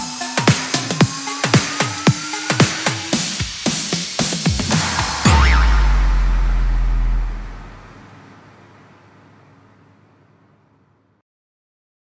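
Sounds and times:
drum hits: 0:00.4 - 0:08.1
deep sub-bass note: 0:04.5 - 0:08.2.

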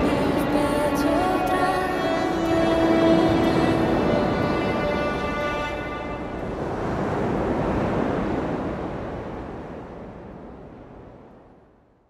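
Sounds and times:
pop song held notes: 0:00.0 - 0:04.8.

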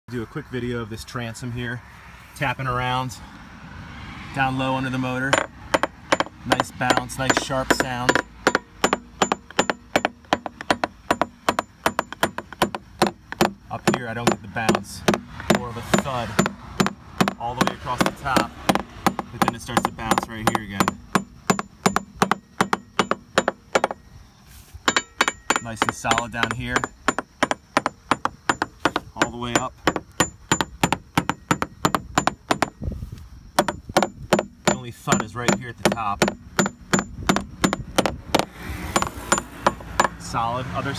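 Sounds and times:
hammer tapping fiberglass: 0:05.3 - 0:24.0, 0:24.8 - 0:32.8, 0:33.6 - 0:40.2.

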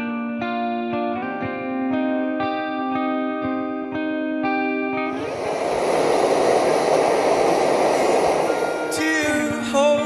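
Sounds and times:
forge burner roaring: 0:05.1 - 0:09.7.

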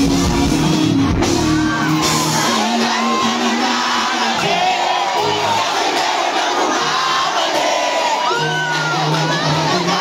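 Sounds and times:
crowd cheering and screaming: 0:00.0 - 0:10.0
live rap music: 0:00.0 - 0:10.0.

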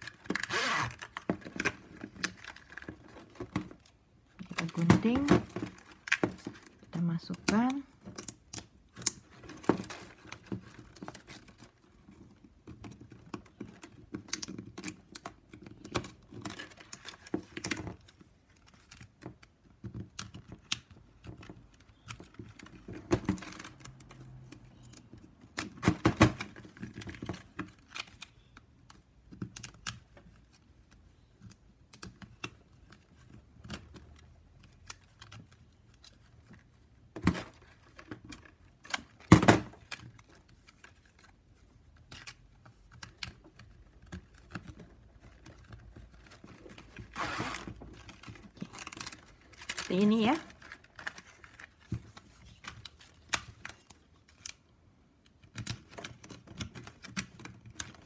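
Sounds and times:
plastic strap clicking and rasping: 0:00.0 - 0:58.0.

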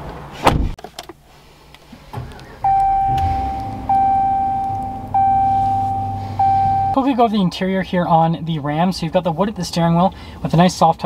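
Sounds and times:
low steady hum: 0:02.4 - 0:07.4
dashboard warning chime: 0:02.6 - 0:07.2.

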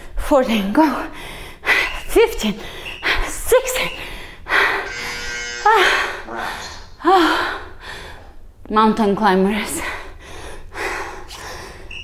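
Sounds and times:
woman panting hard: 0:01.1 - 0:03.4, 0:04.0 - 0:08.4, 0:09.7 - 0:11.9.

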